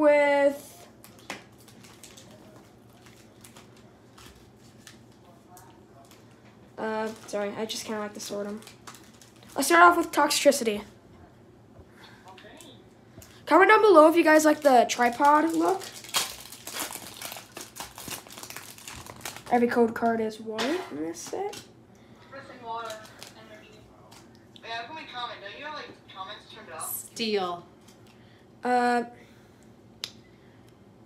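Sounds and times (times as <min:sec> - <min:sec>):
foil packs crinkling: 0:01.0 - 0:06.3, 0:06.9 - 0:10.2, 0:14.2 - 0:19.8, 0:22.8 - 0:23.4.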